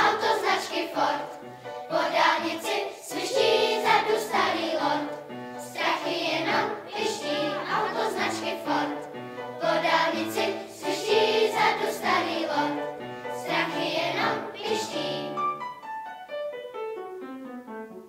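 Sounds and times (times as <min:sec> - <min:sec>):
children's choir singing: 0:00.0 - 0:15.6.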